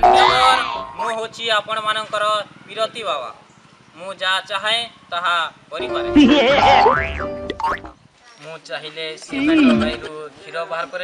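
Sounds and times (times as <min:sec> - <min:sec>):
boing: 0:00.0 - 0:01.0, 0:06.2 - 0:08.0.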